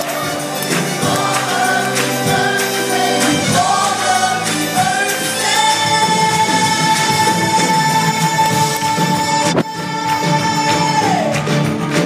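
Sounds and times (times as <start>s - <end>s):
gospel choir singing: 0.0s - 11.4s.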